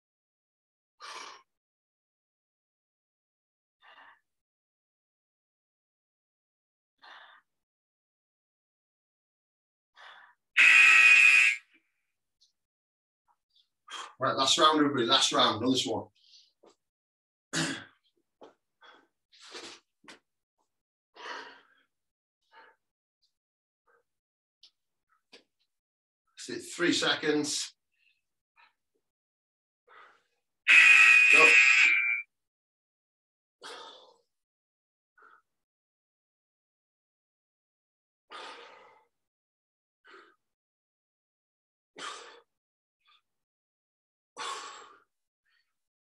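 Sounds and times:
timer buzzer: 0:10.6 - 0:11.6, 0:30.7 - 0:32.3.

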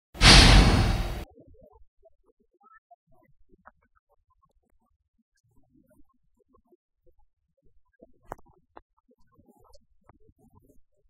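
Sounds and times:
whoosh sound effect: 0:00.2 - 0:01.2.

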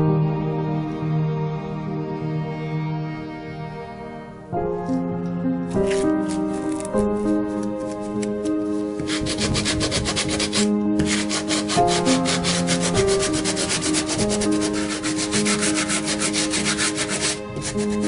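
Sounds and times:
background music: 0:00.0 - 0:18.0
sandpaper rasping on wood: 0:09.0 - 0:18.0.

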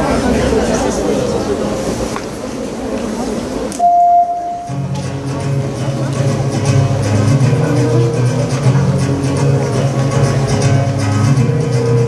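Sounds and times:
music over sound system: 0:04.0 - 0:12.0.

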